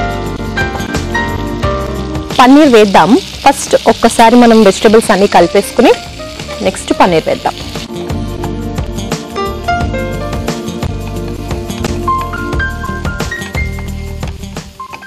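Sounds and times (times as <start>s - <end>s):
background music: 0.0s - 15.0s
vegetables sizzling in a frying pan: 0.5s - 9.1s, 12.6s - 15.0s.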